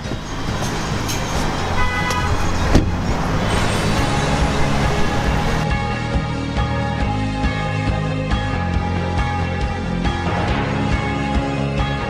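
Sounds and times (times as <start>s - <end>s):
road traffic rumble: 0.0s - 5.9s
music: 0.0s - 12.0s.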